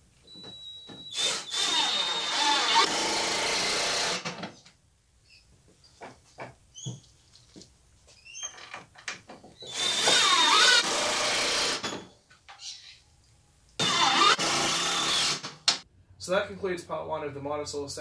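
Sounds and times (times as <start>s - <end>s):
power drill driving screws: 0.9s - 4.4s, 9.6s - 12.0s, 13.8s - 15.6s.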